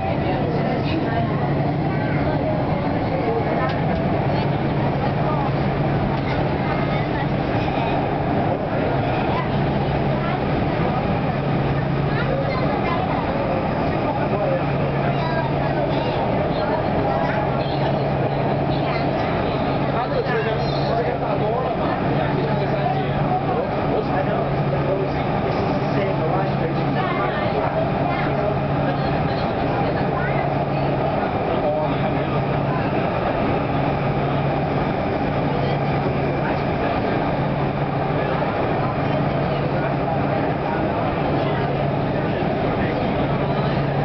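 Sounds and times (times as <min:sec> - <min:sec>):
people talking: 0:00.0 - 0:44.0
train running in tunnel: 0:00.0 - 0:44.0.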